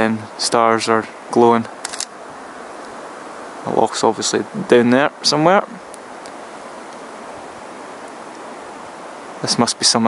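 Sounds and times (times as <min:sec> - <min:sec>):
steady even hiss: 0:00.0 - 0:10.0.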